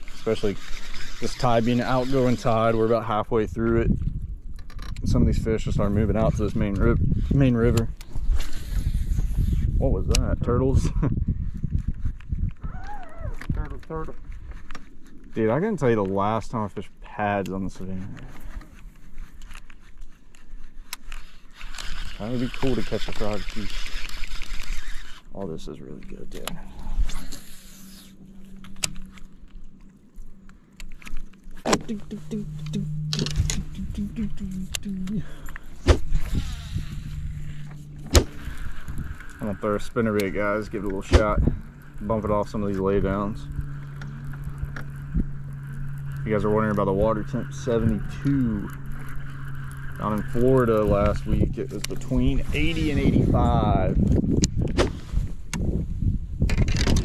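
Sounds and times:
electric motor humming: 0:00.0 - 0:03.2, 0:20.9 - 0:55.8
wind rumbling on microphone: 0:00.0 - 0:57.0
fishing rod clicks: 0:18.6 - 0:25.3.

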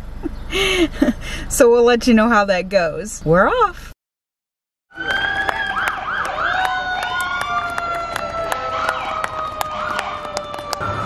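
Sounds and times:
sirens wailing: 0:04.9 - 0:11.0.

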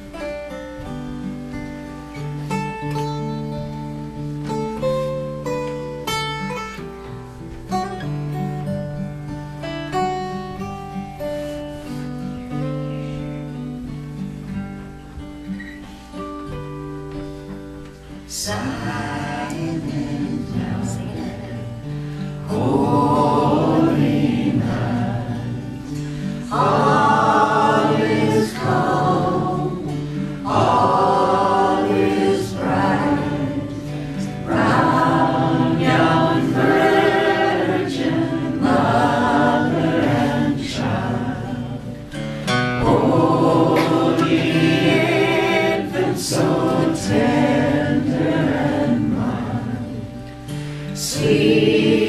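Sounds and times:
acoustic guitars: 0:00.0 - 0:52.0
man and woman singing: 0:18.2 - 0:52.0.

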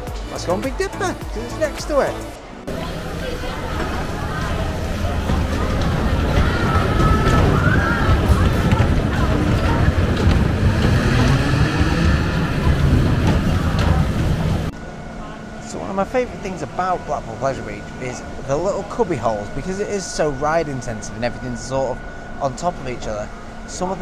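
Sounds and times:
music: 0:00.0 - 0:10.4
people's voices: 0:00.0 - 0:24.0
roller coaster rumbling on track: 0:00.0 - 0:24.0.

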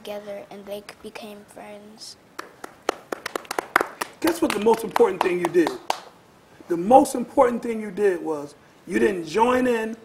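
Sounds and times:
people clapping: 0:02.4 - 0:06.2.

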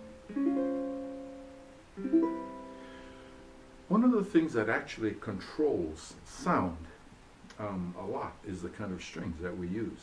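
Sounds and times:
ukulele chord ringing: 0:00.0 - 0:03.8.

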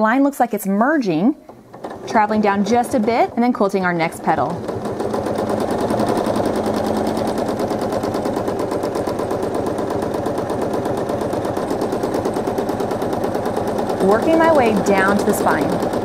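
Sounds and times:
quilting machine stitching: 0:01.0 - 0:16.0.

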